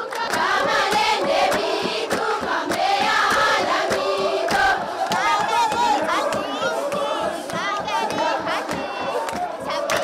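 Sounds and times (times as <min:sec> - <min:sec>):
rhythmic clapping: 0:00.0 - 0:10.0
women singing: 0:00.0 - 0:10.0.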